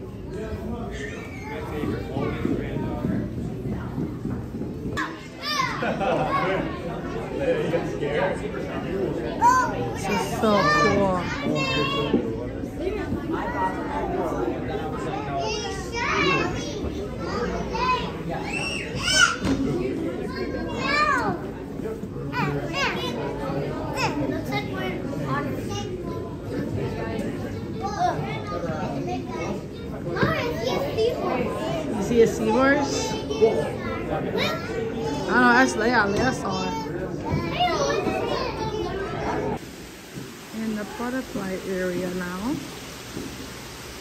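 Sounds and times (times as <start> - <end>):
children calling and squealing: 0.0 - 3.1, 4.9 - 7.2, 9.2 - 12.5, 13.3 - 39.6
crowd chatter: 0.0 - 44.0.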